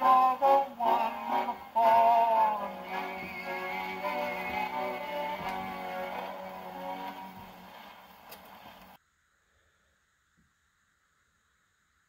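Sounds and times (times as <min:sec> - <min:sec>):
old phonograph record playing: 0:00.0 - 0:09.0
record surface hiss: 0:00.0 - 0:12.0.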